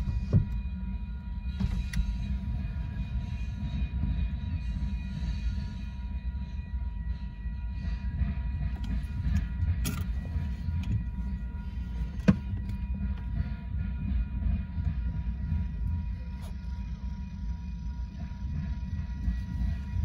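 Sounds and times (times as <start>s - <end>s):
train cars clanking: 0.0s - 5.8s, 7.8s - 20.0s
train wheels rumbling on rail: 0.0s - 20.0s.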